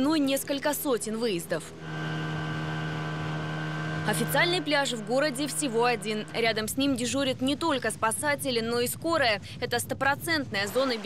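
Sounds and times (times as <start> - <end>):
motorboat engine running: 0.0 - 9.3, 10.0 - 11.0.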